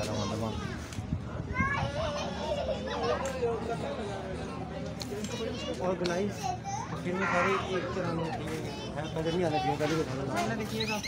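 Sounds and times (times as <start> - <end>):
people chattering: 0.0 - 11.0
children calling out: 1.5 - 3.6, 5.2 - 10.0.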